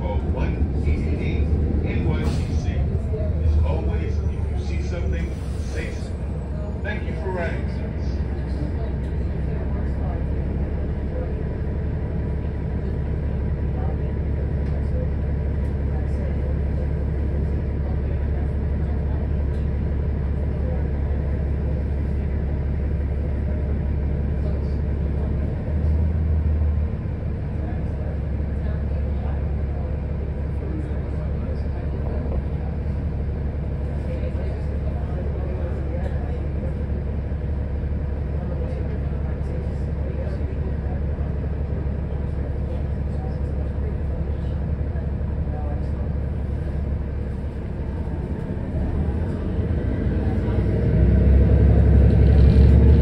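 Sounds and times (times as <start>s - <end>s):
bus engine idling: 0.0s - 53.0s.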